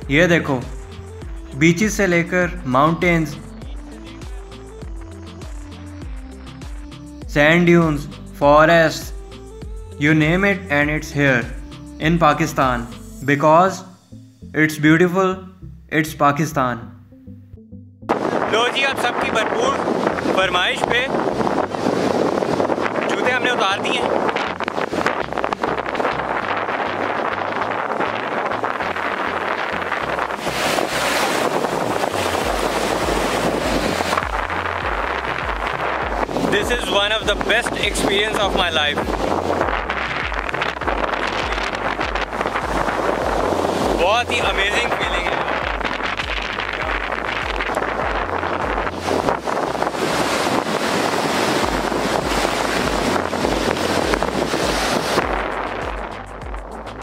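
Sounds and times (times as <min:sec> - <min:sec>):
music with low beat: 0:00.0 - 0:13.3, 0:24.3 - 0:57.0
sea surf rushing: 0:18.1 - 0:57.0
wind buffeting microphone: 0:18.1 - 0:57.0.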